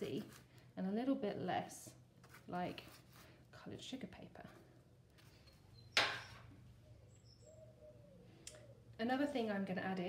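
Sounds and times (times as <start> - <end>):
small bird chirping: 5.3 - 8.9.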